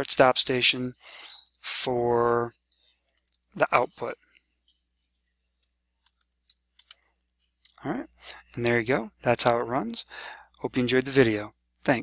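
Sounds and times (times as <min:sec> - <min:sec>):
computer keyboard keystrokes: 0:06.1 - 0:07.1.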